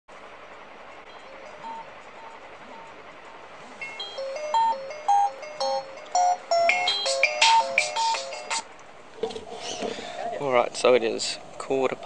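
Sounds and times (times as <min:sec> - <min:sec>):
phone alarm chime melody: 0:01.1 - 0:02.9, 0:03.8 - 0:08.6.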